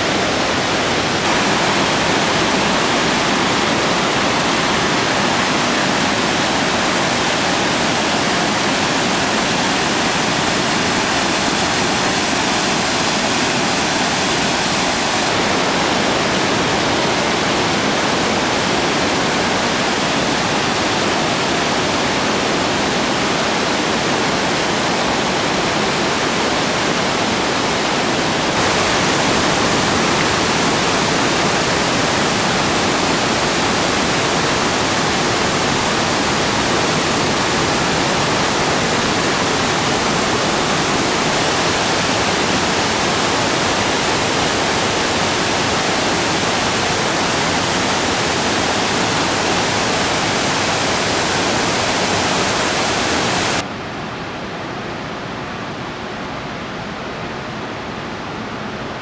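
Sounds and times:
waterfall rushing over rocks: 0.0 - 59.0.

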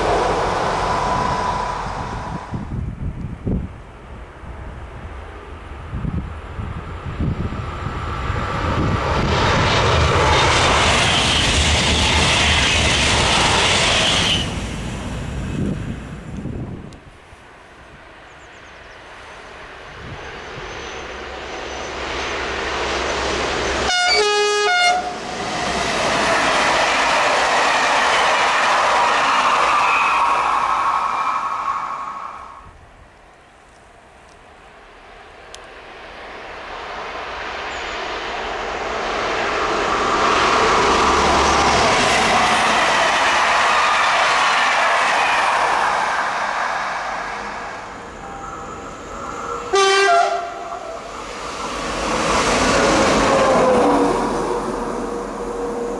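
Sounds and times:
train wheels rolling on rails: 0.0 - 3.8, 4.6 - 17.2, 24.9 - 32.7, 33.7 - 55.9
train horn blast: 23.8 - 25.2, 49.6 - 51.1.

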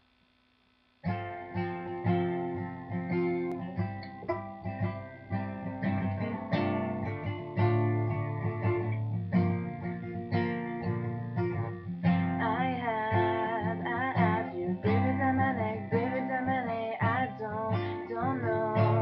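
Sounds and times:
acoustic guitar strumming: 1.0 - 19.0.

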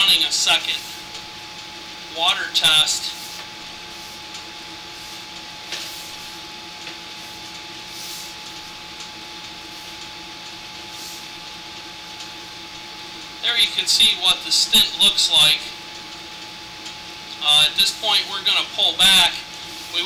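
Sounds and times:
mechanical hum: 0.0 - 20.0
thin whine: 0.0 - 20.0.

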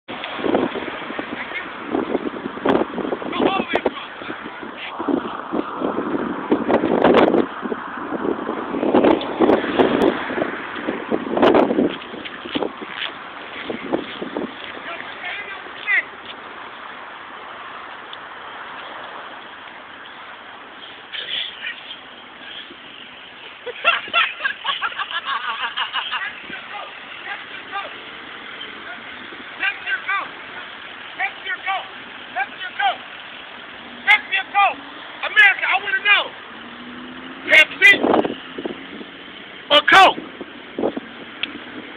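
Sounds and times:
roadside traffic rushing: 0.0 - 41.9
wind noise: 0.1 - 16.6, 22.3 - 30.6, 36.3 - 41.9
distant voice shouting: 3.3 - 4.9, 14.8 - 16.1, 26.1 - 28.0, 28.6 - 33.1, 34.0 - 36.4, 37.4 - 38.1, 39.7 - 40.2.

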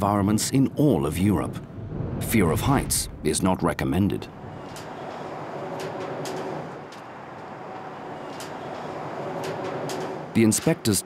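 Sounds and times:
mechanical rumble: 0.5 - 10.5.

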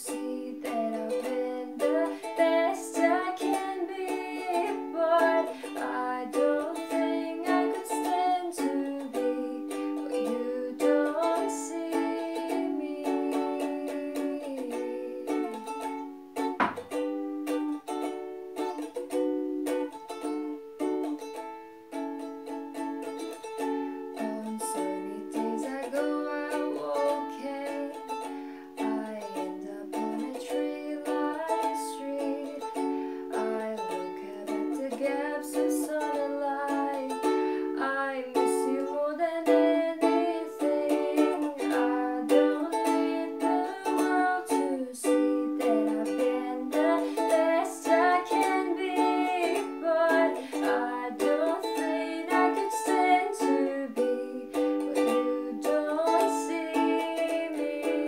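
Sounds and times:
person singing: 0.0 - 17.8, 22.4 - 58.0
ukulele strumming chords: 0.0 - 58.0.

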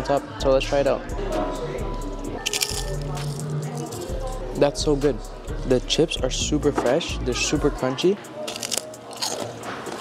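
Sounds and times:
background music: 0.0 - 10.0
crunching tortilla chip: 2.5 - 4.1, 8.4 - 10.0.

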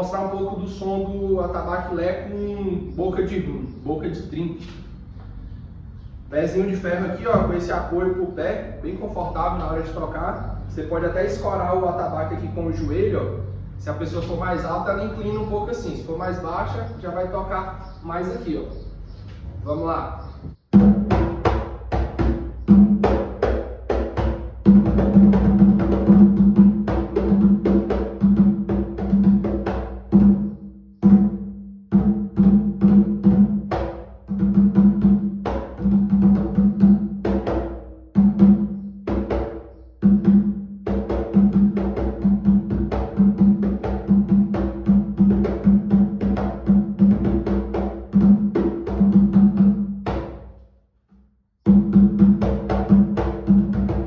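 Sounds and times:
deep wooden hand drum played fast: 7.3 - 8.2, 20.6 - 50.4, 51.7 - 54.0.

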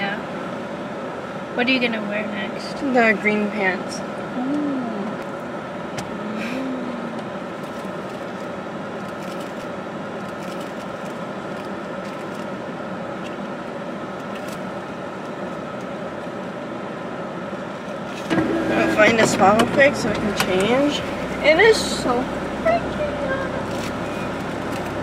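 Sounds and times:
car cabin engine hum: 0.0 - 25.0.

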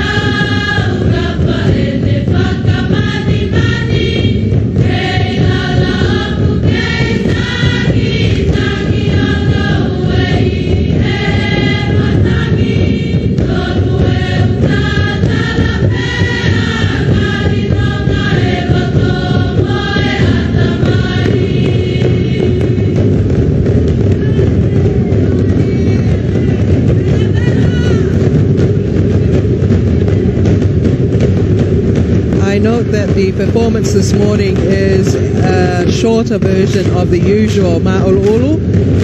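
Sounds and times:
choir of girls chanting: 0.0 - 29.7
skin drums drumming: 0.0 - 39.0.

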